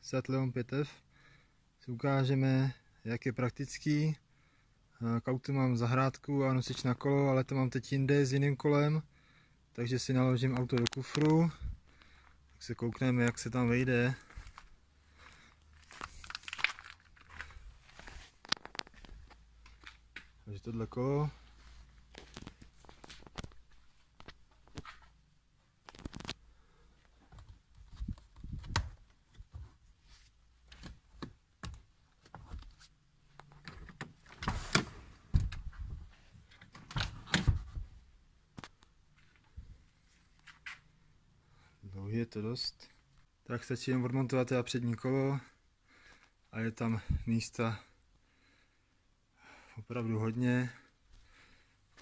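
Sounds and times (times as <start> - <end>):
phone rustling while walking: 13.0 - 20.4, 21.3 - 26.4, 27.0 - 37.9.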